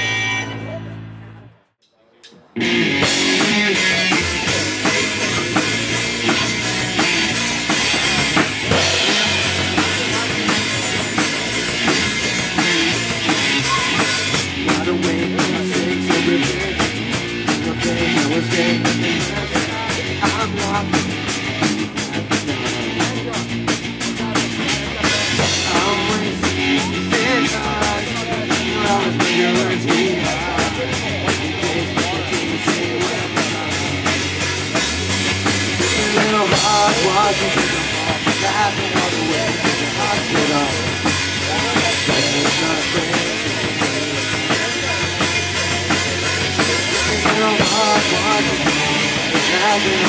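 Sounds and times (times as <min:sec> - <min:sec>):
live rock band playing: 0:02.5 - 0:50.0
fast drum beat: 0:02.9 - 0:50.0.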